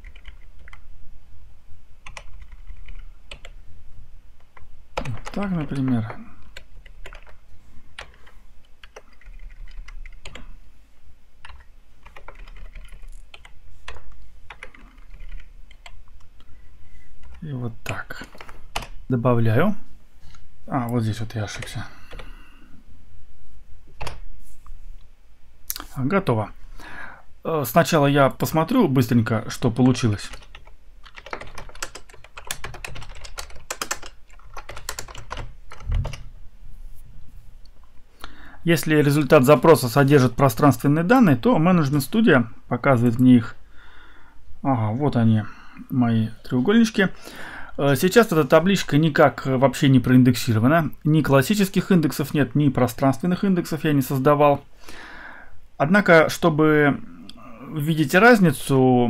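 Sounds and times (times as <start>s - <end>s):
typing on computer keyboard: 0.0s - 0.8s, 2.0s - 3.6s, 4.5s - 7.4s, 8.0s - 10.5s, 11.4s - 16.0s, 29.8s - 36.2s.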